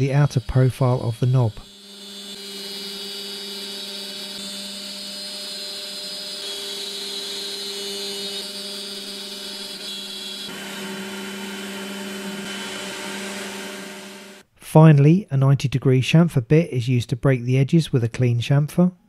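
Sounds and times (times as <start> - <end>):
milling machine whine: 0.0 - 14.4.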